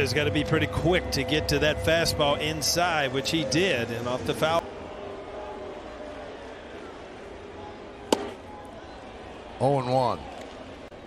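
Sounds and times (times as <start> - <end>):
crowd murmur: 4.6 - 9.6
ball smacking into catcher's mitt: 8.1 - 8.4.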